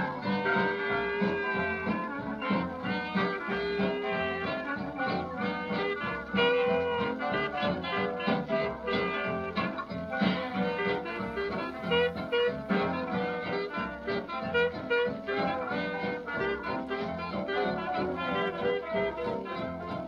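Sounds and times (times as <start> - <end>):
jazz clarinet solo: 0.0 - 20.0
jazz rhythm section: 0.0 - 20.0.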